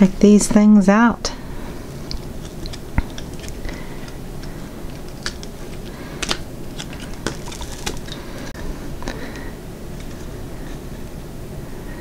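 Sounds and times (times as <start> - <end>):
silicone mold peeling off resin: 2.0 - 8.5.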